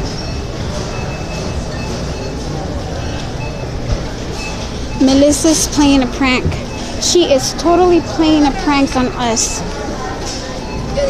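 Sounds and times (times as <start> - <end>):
supermarket hubbub: 0.0 - 11.0.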